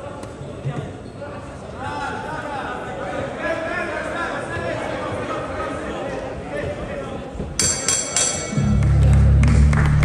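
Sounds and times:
voices calling out in a hall: 0.0s - 9.4s.

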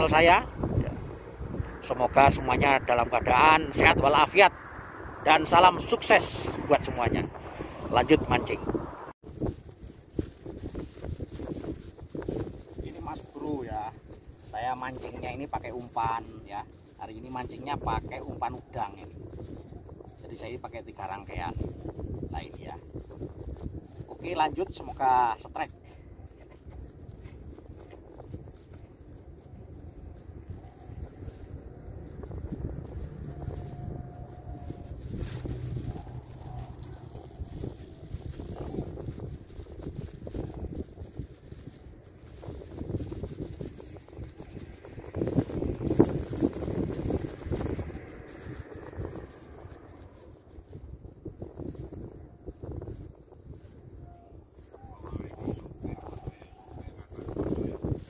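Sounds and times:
wind rumbling on microphone: 0.0s - 58.0s.

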